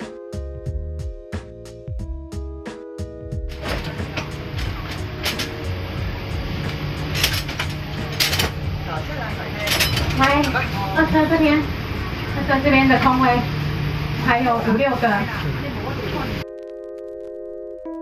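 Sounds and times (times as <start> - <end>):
train carriage low hum: 3.5 - 16.4
voices: 8.8 - 13.6, 14.2 - 16.4.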